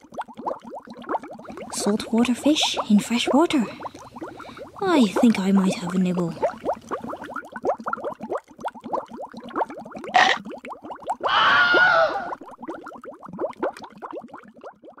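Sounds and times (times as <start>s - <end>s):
underwater bubbling: 0.0s - 15.0s.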